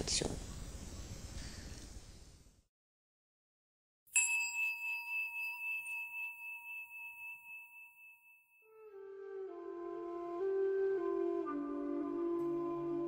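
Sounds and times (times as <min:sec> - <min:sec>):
bell ringing: 0:04.1 - 0:08.7.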